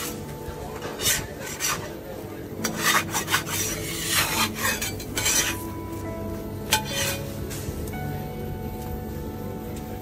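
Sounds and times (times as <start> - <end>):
metal spatula scraping griddle: 0.0 - 5.9, 6.6 - 7.7.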